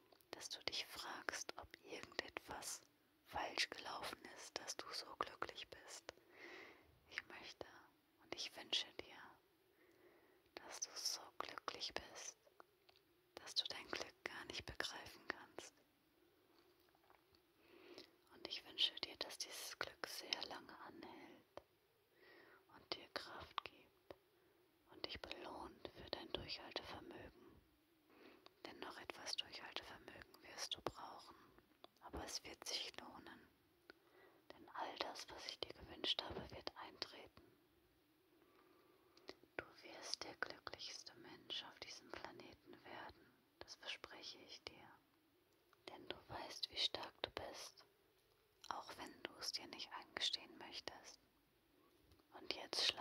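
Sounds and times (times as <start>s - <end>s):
woman whispering: 0.2s - 6.2s, 7.0s - 9.4s, 10.5s - 12.6s, 13.4s - 15.8s, 17.9s - 21.7s, 22.3s - 24.2s, 24.9s - 27.5s, 28.4s - 33.5s, 34.5s - 37.5s, 39.2s - 45.0s, 45.8s - 47.9s, 48.6s - 51.2s, 52.3s - 53.0s.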